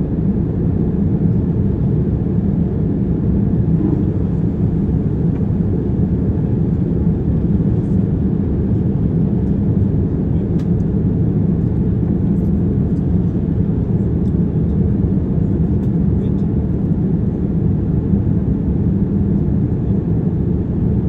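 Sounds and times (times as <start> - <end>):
jet engines droning: 0.1 - 12.1
air rushing past fuselage: 3.4 - 6.2.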